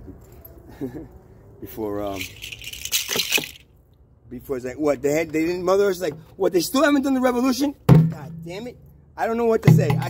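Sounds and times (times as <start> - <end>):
percussion shaker rattling: 2.1 - 3.7.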